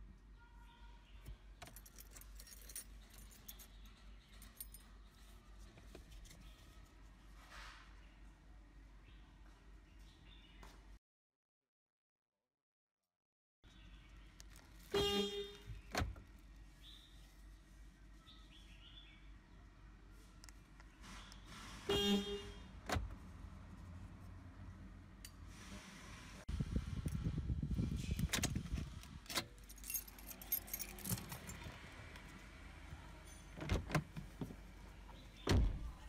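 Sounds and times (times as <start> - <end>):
car keys jangling: 1.6 - 5.0, 28.4 - 31.8.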